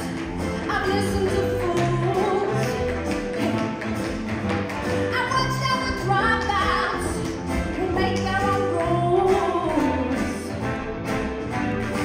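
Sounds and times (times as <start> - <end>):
loud backing music: 0.0 - 12.0
tap shoes clicking on stage floor: 0.0 - 12.0.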